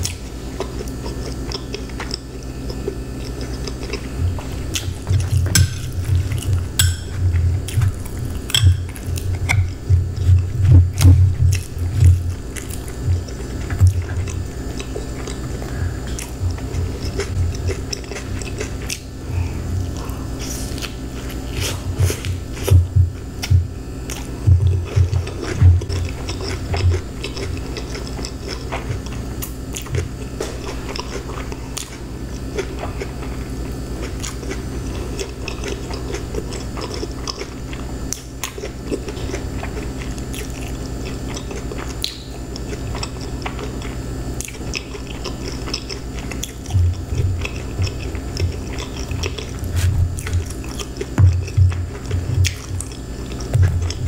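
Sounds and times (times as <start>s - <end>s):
chewing food: 0.0s - 54.0s
low steady hum: 0.0s - 54.0s.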